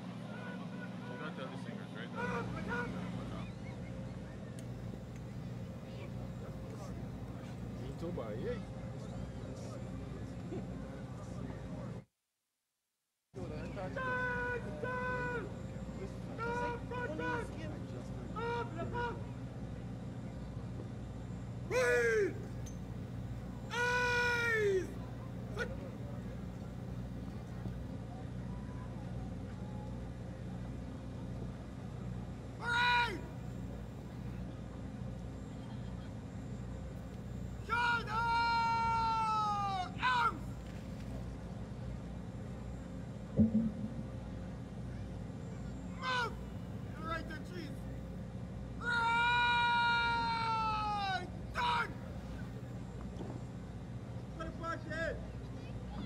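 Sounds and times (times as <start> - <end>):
steady low hum: 0.0 - 12.1, 13.4 - 49.0, 51.0 - 56.0
shouted words of command: 21.7 - 22.5, 23.7 - 25.9, 32.6 - 33.4, 37.6 - 40.5, 46.0 - 46.4, 47.0 - 47.8, 48.8 - 52.0.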